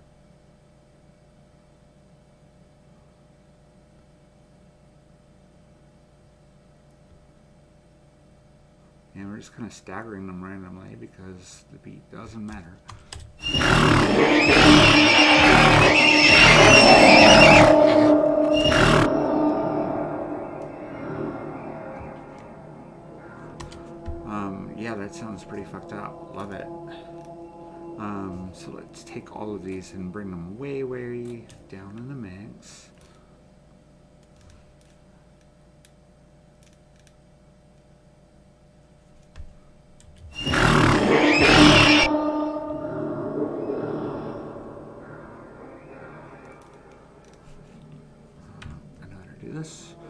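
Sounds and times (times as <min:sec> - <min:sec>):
low background hum: 0:00.0 - 0:50.0
horse neighs and snorts: 0:13.4 - 0:19.1.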